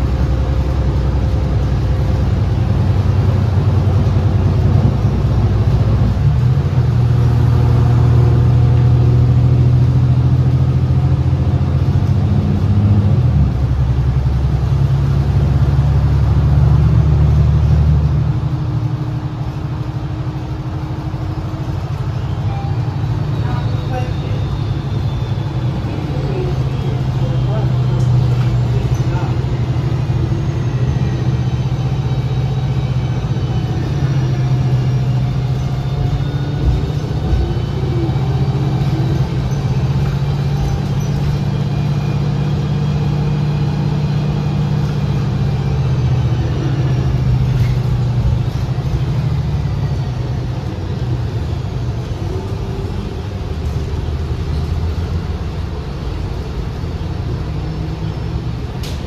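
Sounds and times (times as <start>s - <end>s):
bus engine and drivetrain hum: 0.0s - 59.0s
road noise: 0.0s - 59.0s
faint rising whines: 15.4s - 59.0s.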